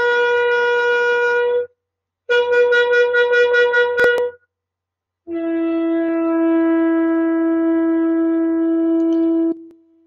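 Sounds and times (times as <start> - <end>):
shofar blasts: 0.0 - 1.7, 2.3 - 4.4, 5.3 - 9.7.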